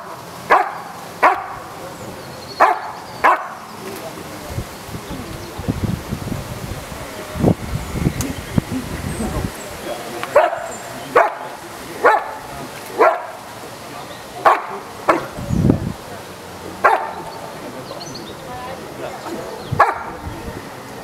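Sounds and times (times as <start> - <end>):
dog barking sharply: 0.5 - 1.7, 2.6 - 3.6, 10.3 - 12.4, 13.0 - 13.4, 14.4 - 15.3, 16.8 - 17.2, 19.8 - 20.1.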